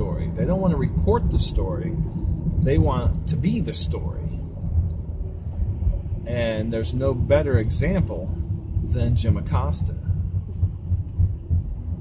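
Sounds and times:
car rumbling from inside cabin: 0.0 - 12.0.

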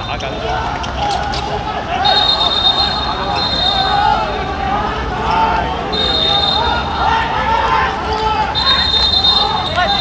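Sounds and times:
men shouting: 0.4 - 10.0.

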